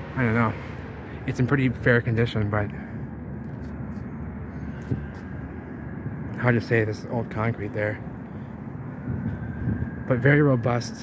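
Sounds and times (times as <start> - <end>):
city street background noise: 0.0 - 11.0.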